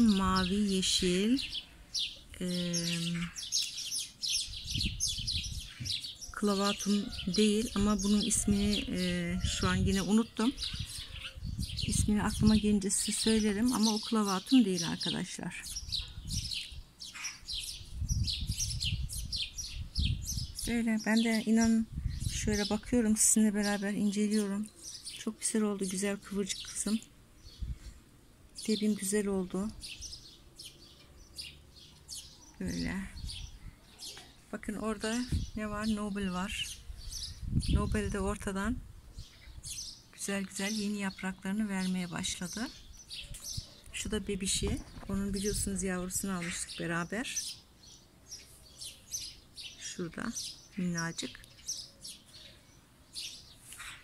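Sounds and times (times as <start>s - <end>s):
small songbirds chirping: 0.0s - 54.0s
low microphone rumble: 7.7s - 13.5s, 15.9s - 16.9s, 21.6s - 22.7s.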